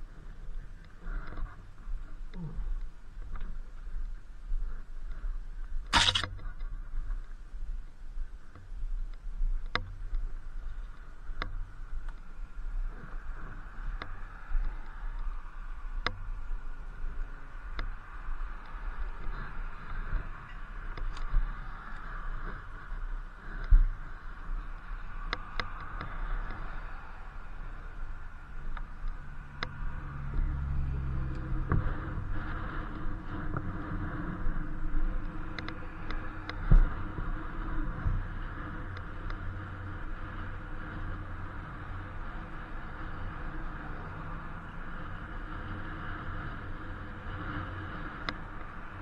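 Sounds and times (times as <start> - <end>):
electric unicycle humming: 0.0 - 49.0
wind rumbling on microphone: 0.0 - 49.0
sharp clicks: 6.0 - 6.4.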